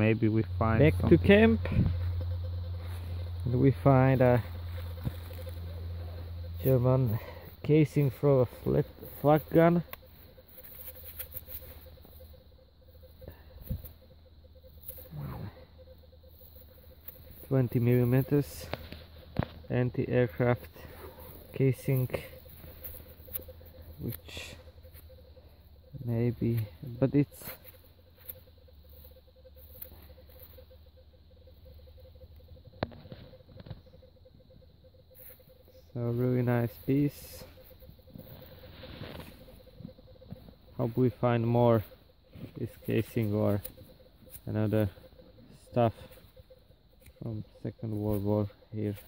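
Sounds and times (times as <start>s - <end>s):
rustling of dry leaves and soil: 0.0s - 49.0s.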